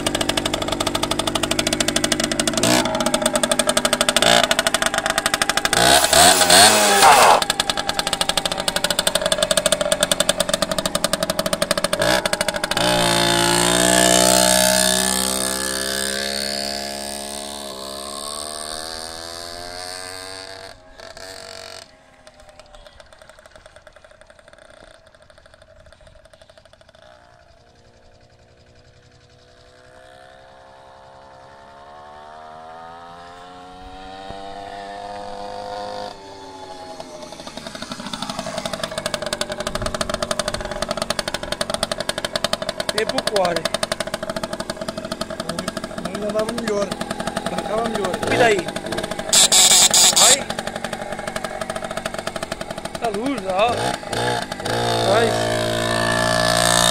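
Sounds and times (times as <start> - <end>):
motorbike engine accelerating: 0.0 - 56.9.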